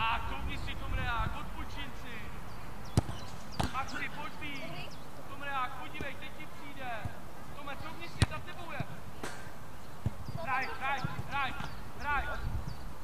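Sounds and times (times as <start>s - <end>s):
football kicked thud: 2.9s - 3.9s, 8.2s - 10.4s.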